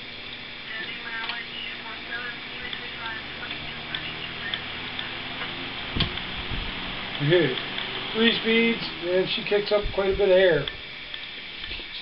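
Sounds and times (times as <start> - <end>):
electric fan blades rushing: 0.0 - 12.0
fan motor hum: 0.0 - 12.0
fan speed switch click: 2.6 - 8.4.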